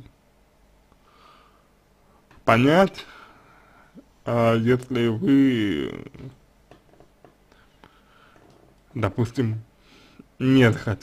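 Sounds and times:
soft breath: 0:01.0 - 0:02.3, 0:03.0 - 0:04.2, 0:07.5 - 0:08.6, 0:09.8 - 0:10.4
man speaking: 0:02.4 - 0:03.2, 0:04.2 - 0:06.4, 0:08.9 - 0:09.7, 0:10.4 - 0:11.0.

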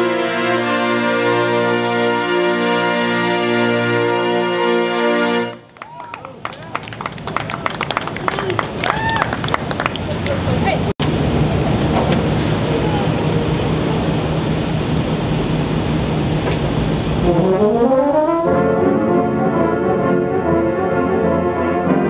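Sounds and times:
brass chords: 0:00.0 - 0:05.8, 0:17.0 - 0:22.0
crowd voices and cheers: 0:05.8 - 0:10.8.

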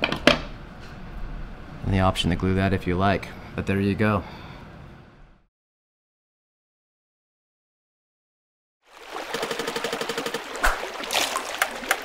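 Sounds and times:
stream running: 0:08.8 - 0:12.0
sharp splashes: 0:08.9 - 0:12.0
rapid clicks: 0:09.3 - 0:10.5.

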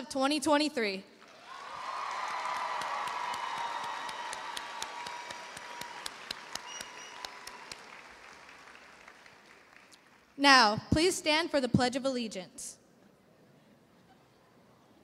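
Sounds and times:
large audience applauding: 0:01.2 - 0:10.4.

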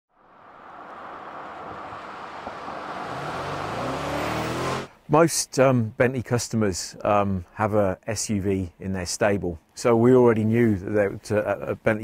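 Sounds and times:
car engine approaching: 0:00.1 - 0:05.0.

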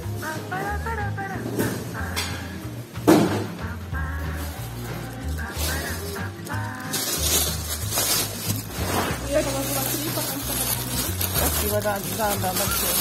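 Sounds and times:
song with voice and bass line: 0:00.0 - 0:12.8.

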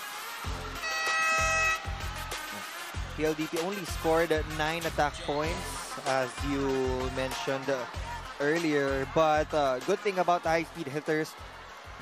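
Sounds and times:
music with steady beat: 0:00.0 - 0:12.0
held horn-like chord: 0:00.7 - 0:02.2.

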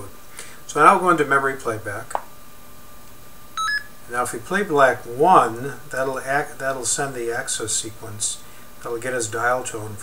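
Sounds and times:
short electronic beep: 0:03.6 - 0:04.0.

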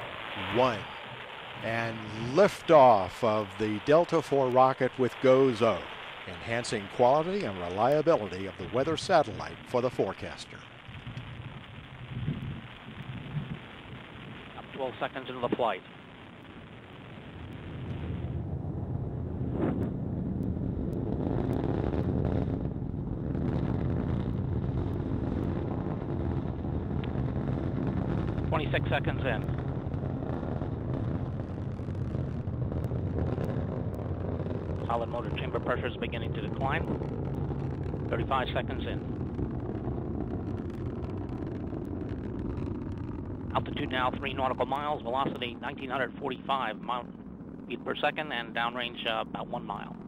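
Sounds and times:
rocket engine low rumble: 0:00.0 - 0:50.0.

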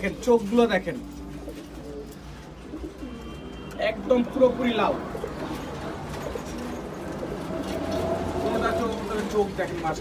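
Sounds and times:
pigeons cooing softly: 0:00.0 - 0:10.0.

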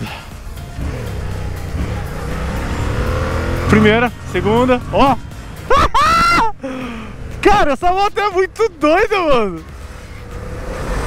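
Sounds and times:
motorcycle engine running: 0:00.0 - 0:05.7.

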